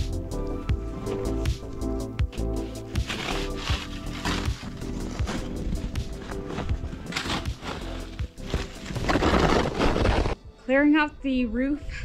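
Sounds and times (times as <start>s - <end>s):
background music: 0.0s - 12.0s
snow shovel scraping through snow: 2.4s - 10.4s.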